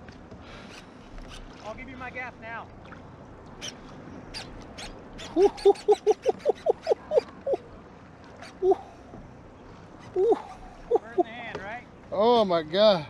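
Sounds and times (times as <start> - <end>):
man laughing hard: 5.4 - 7.6, 10.2 - 11.3.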